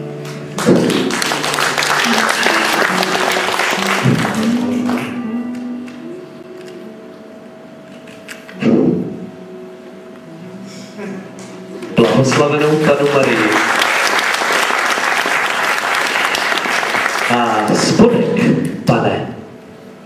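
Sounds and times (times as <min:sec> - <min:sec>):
stage music with sustained tones: 0:00.0 - 0:20.0
audience applause: 0:00.3 - 0:05.2, 0:12.0 - 0:18.2.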